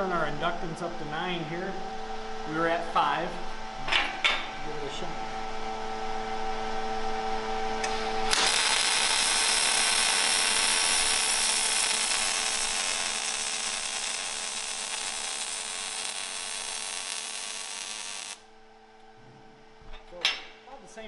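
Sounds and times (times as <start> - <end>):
welder cooling fan humming: 0.0 - 20.0
welding arc hissing: 7.8 - 18.5.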